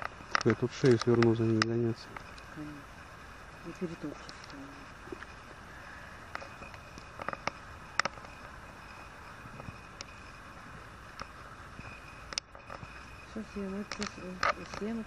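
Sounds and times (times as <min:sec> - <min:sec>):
low steady hiss: 0:00.0 - 0:15.0.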